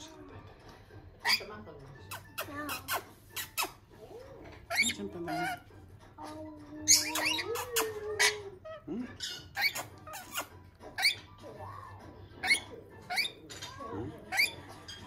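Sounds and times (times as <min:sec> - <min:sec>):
lorikeets chirping and squeaking: 0:01.2 - 0:15.0.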